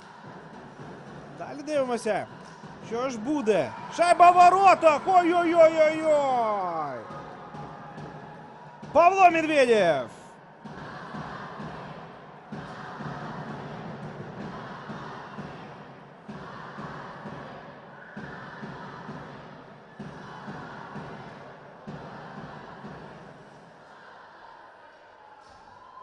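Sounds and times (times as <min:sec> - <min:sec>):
crowd noise: 0:00.0 - 0:26.0.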